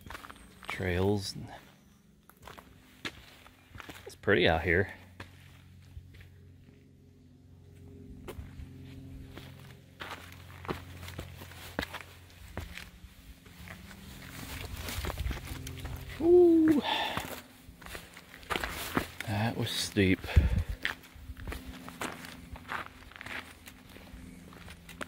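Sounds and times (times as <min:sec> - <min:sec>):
footsteps on a trail: 0:00.0 - 0:25.0
steady low drone: 0:00.0 - 0:25.0.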